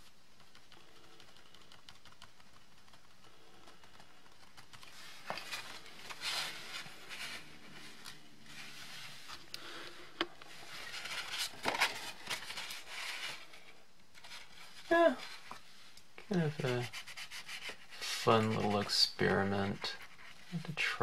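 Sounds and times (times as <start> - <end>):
paper card rustling: 0.4 - 15.7
cotton swab rubbing card: 16.4 - 20.6.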